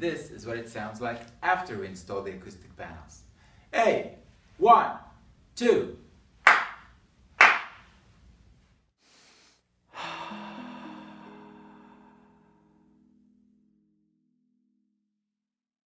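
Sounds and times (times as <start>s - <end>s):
hand clap: 6.4s - 7.9s
musical sting: 10.1s - 13.5s.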